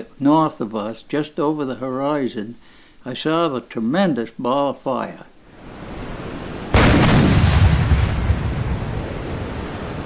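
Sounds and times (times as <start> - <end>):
heavy explosion rumble: 6.7 - 9.9.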